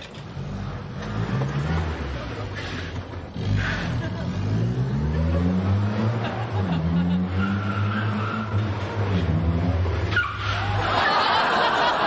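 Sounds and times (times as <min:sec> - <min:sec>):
small car engine running hard: 0:00.0 - 0:10.9
tyres squealing: 0:10.0 - 0:10.8.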